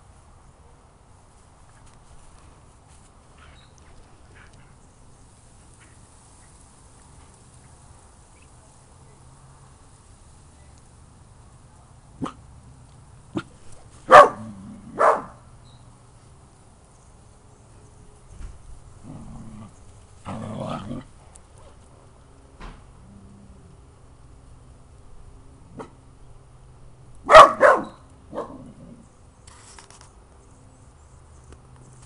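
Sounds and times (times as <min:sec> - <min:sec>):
dog barking: 0:12.2 - 0:12.4, 0:14.1 - 0:15.4, 0:27.3 - 0:28.7.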